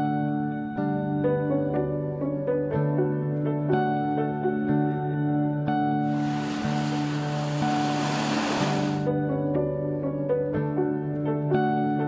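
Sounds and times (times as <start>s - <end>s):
soft background music: 0.0s - 12.0s
small waves breaking on beach: 6.1s - 9.1s.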